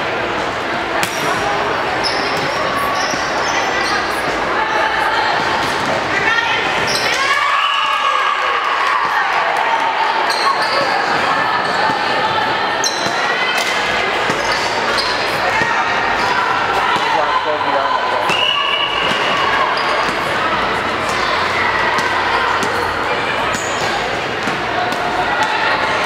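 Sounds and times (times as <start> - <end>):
people calling out and cheering: 0.7 - 26.0
volleyball slaps and bounces: 1.0 - 1.5, 8.8 - 9.3, 11.8 - 12.2, 12.9 - 17.2, 18.2 - 26.0.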